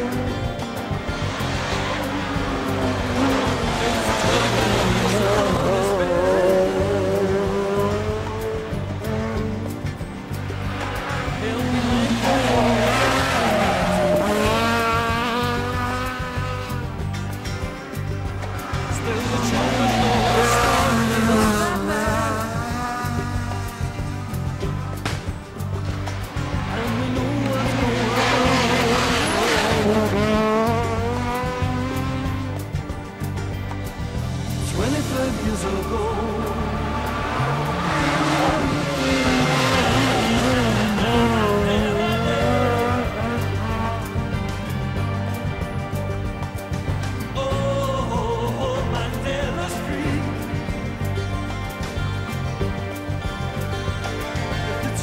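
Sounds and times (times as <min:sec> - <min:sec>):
background music: 0:00.0 - 0:55.0
rally car engine accelerating: 0:00.0 - 0:55.0.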